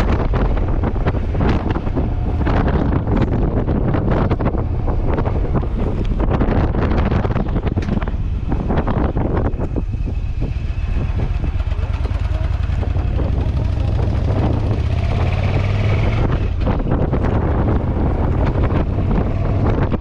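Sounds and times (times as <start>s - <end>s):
motorcycle engine running: 0.0s - 20.0s
wind buffeting microphone: 0.0s - 20.0s.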